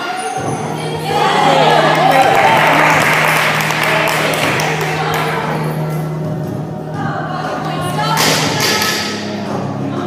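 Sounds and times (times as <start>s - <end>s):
background music with singing: 3.7s - 10.0s.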